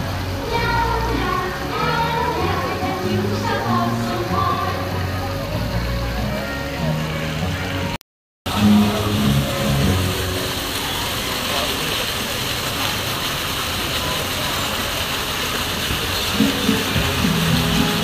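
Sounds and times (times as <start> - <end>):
fountain water splashing: 0.0 - 18.0
people talking: 0.0 - 18.0.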